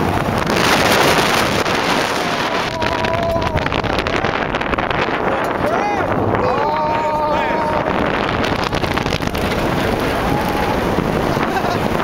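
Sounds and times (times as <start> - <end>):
roller coaster train rumbling: 0.0 - 12.0
wind rushing over microphone: 0.0 - 12.0
person screaming: 2.5 - 4.4, 5.6 - 8.0.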